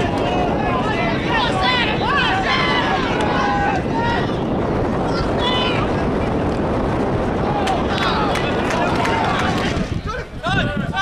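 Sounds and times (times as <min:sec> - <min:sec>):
voices shouting and calling out: 0:00.0 - 0:06.4, 0:07.2 - 0:11.0
wind rumble on microphone: 0:00.0 - 0:11.0.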